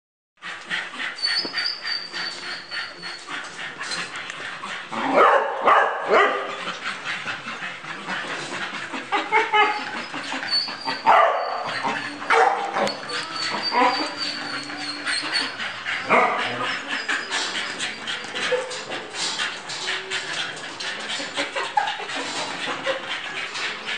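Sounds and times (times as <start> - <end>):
dogs barking: 3.6 - 23.9.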